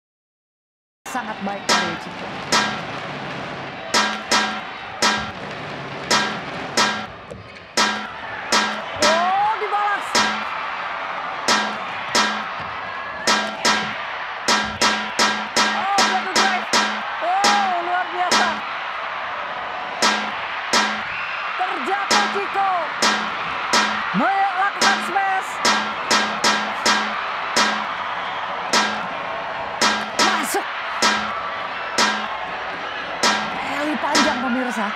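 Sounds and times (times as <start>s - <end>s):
arena crowd noise: 1.1s - 34.9s
rackets smacking shuttlecock: 1.7s - 2.9s, 4.0s - 5.4s, 6.1s - 7.1s, 7.8s - 9.2s, 10.1s - 10.6s, 11.5s - 12.6s, 13.3s - 17.7s, 20.0s - 21.1s, 23.0s - 24.2s, 25.6s - 27.9s, 29.8s - 30.4s, 31.0s - 31.4s, 32.0s - 32.3s.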